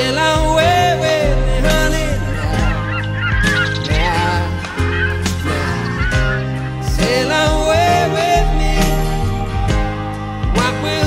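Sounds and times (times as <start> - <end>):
song with steady bass line: 0.0 - 11.0
gulls calling: 1.6 - 10.4.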